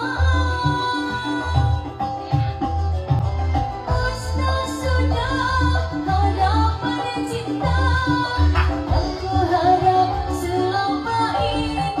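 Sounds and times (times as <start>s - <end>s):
woman singing into a microphone: 0.0s - 12.0s
backing music with bass beat: 7.8s - 10.4s.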